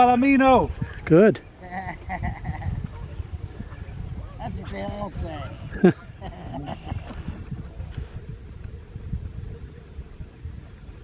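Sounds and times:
wind rumble on microphone: 0.0 - 11.0
person laughing: 1.6 - 2.8, 5.7 - 7.4.

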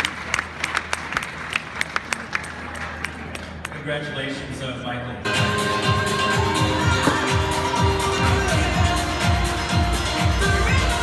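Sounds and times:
audience applauding: 0.0 - 3.7.

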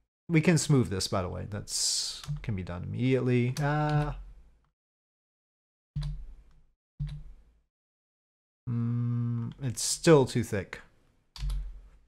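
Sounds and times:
sharp clicks: 2.2 - 2.5, 11.4 - 11.7.

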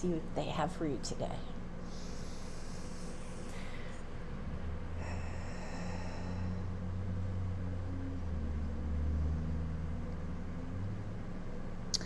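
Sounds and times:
faint hum tones: 0.0 - 12.0.

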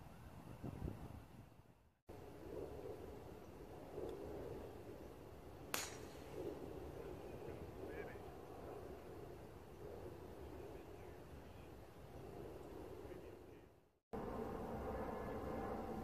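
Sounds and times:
low outdoor background: 0.0 - 16.0
golf club striking ball: 5.7 - 6.3.

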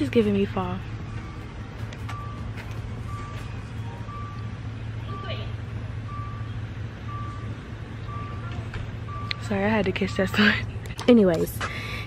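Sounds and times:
steady low hum: 0.0 - 12.0
electronic warning beep: 0.5 - 10.6.

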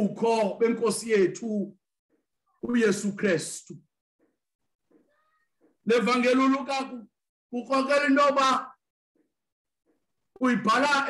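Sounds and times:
man preaching: 0.0 - 1.8, 2.6 - 3.8, 5.8 - 8.9, 10.4 - 11.0.

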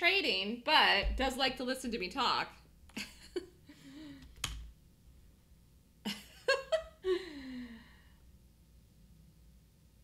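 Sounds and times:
woman laughing into a sigh: 6.1 - 8.0.

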